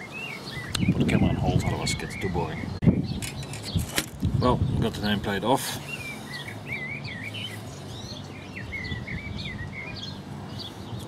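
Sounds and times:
songbird singing: 0:00.0 - 0:11.0.

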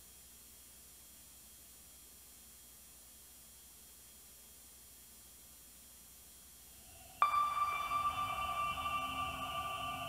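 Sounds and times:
electronic sonar ping: 0:06.8 - 0:10.0
held chord of tones: 0:06.8 - 0:10.0.

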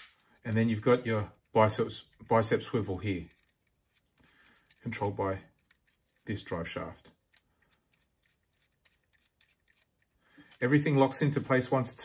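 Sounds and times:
faint plastic clicks: 0:01.3 - 0:10.7.

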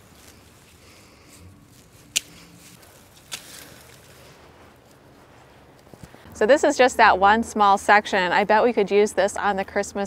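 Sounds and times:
faint rustling of foliage: 0:00.0 - 0:07.0
garden snips cutting stems: 0:01.7 - 0:04.1.

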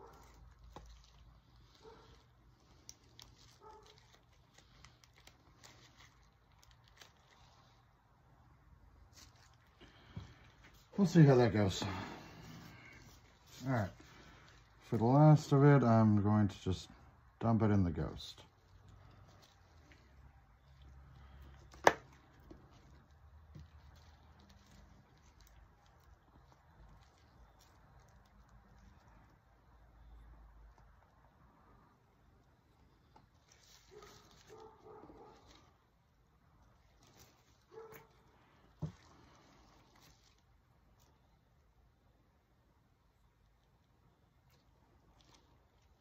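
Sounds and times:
plastic cups and molds handled: 0:00.0 - 0:17.2, 0:17.8 - 0:42.0.

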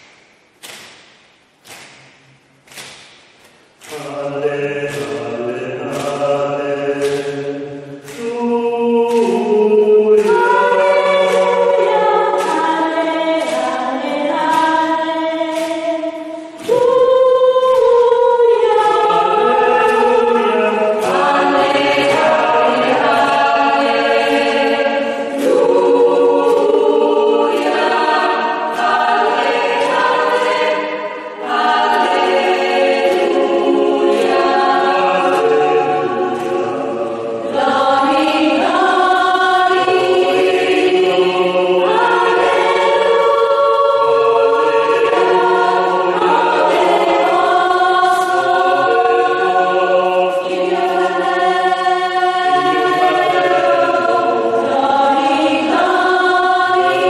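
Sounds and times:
hand clicks keeping beat: 0:00.0 - 0:57.0
choir singing a cappella: 0:03.8 - 0:57.0.

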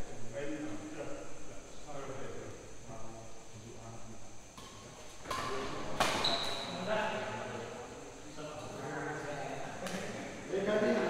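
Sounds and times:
racket hitting shuttlecock: 0:04.6 - 0:06.6.

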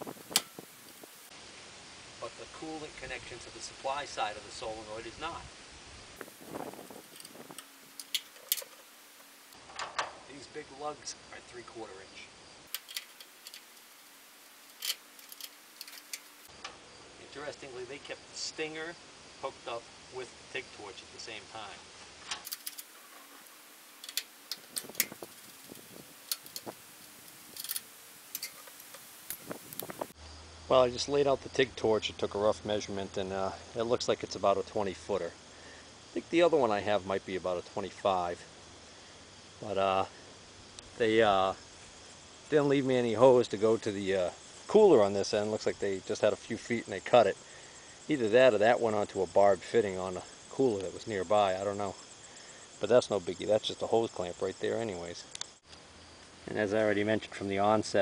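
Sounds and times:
low steady hiss: 0:00.0 - 0:58.0
wrench clicking on metal: 0:07.1 - 0:08.8, 0:12.7 - 0:14.0, 0:14.6 - 0:16.4, 0:22.3 - 0:23.0, 0:24.0 - 0:29.8.

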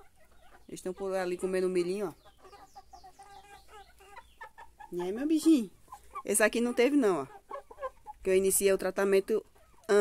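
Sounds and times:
chickens clucking softly: 0:00.0 - 0:10.0.

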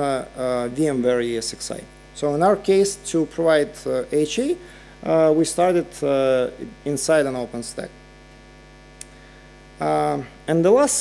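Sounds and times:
person speaking: 0:00.0 - 0:08.0
electrical mains hum: 0:00.0 - 0:11.0.

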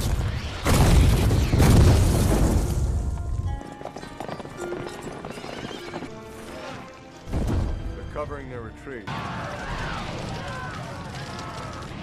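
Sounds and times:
film score music: 0:01.7 - 0:12.0
horses galloping: 0:03.4 - 0:06.7, 0:09.4 - 0:12.0.

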